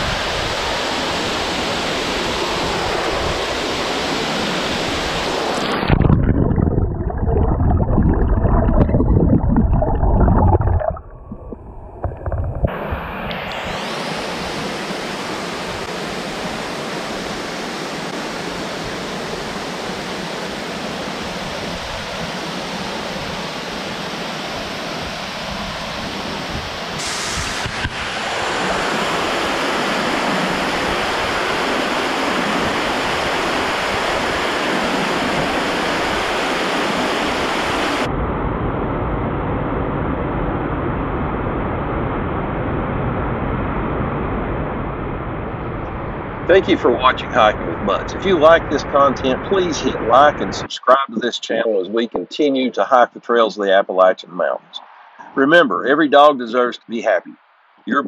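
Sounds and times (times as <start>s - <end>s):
waterfall rushing over rocks: 0.0s - 5.9s, 12.7s - 25.4s, 26.1s - 38.1s.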